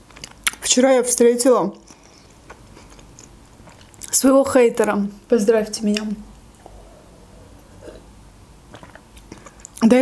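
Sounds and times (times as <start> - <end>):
woman drinking and swallowing: 6.6 - 9.8
lip and mouth clicks: 8.7 - 9.8.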